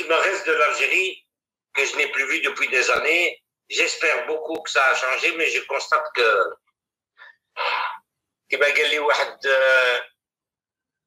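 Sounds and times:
man speaking: 0.0s - 1.2s, 1.8s - 6.6s, 7.6s - 10.1s.

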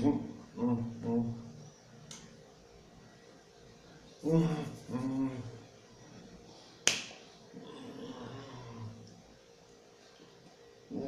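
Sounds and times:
man humming: 0.0s - 1.6s, 4.2s - 5.7s
hands clapping together: 6.8s - 7.2s.

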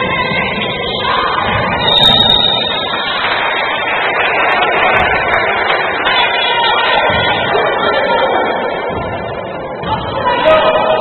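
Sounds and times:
crowd noise in a hall: 0.0s - 11.0s
referee's whistle blast: 1.8s - 3.0s.

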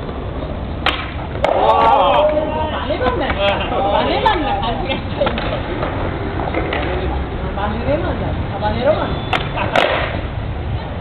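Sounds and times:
skateboard deck cracking on court: 9.4s - 10.2s.

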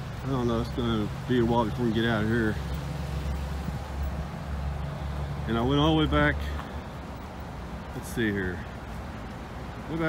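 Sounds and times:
car engines idling: 0.0s - 10.0s
faint outdoor background noise: 0.0s - 10.0s.

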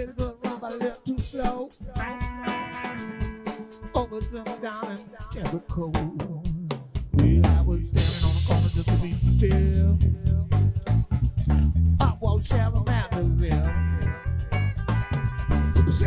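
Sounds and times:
drum kit: 0.0s - 16.0s
bass guitar: 1.2s - 16.0s
electric guitar bending notes: 1.9s - 5.2s, 7.1s - 16.0s.

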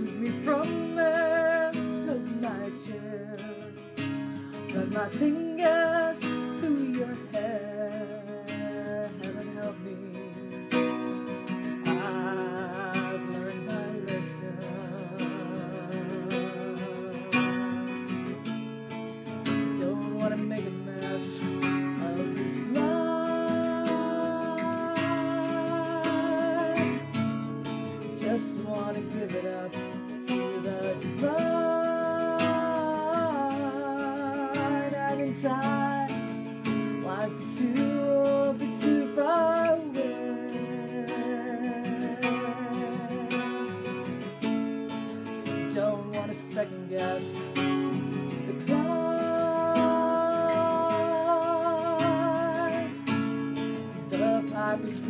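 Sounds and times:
acoustic guitar strumming: 0.0s - 55.0s
woman singing: 0.0s - 55.0s.

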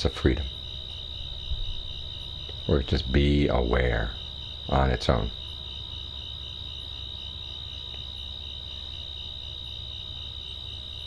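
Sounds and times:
crickets trilling: 0.0s - 11.0s
low steady hum: 0.0s - 11.0s.

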